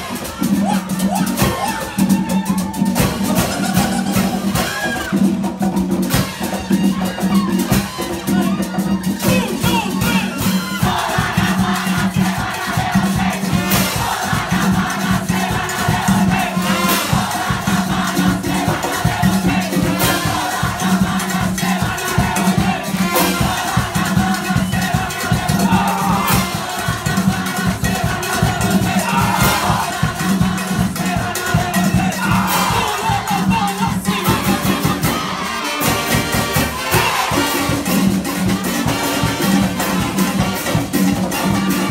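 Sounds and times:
crowd singing and shouting: 0.0 - 41.9
percussion band drumming: 0.0 - 41.9.

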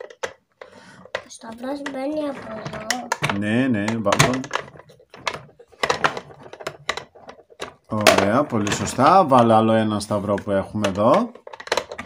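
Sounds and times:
plastic pieces clicking in toy: 0.0 - 12.0.

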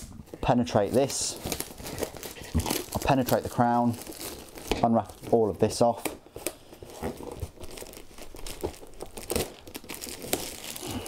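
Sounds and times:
plastic shrink-wrap crinkling and tearing: 0.0 - 11.0.

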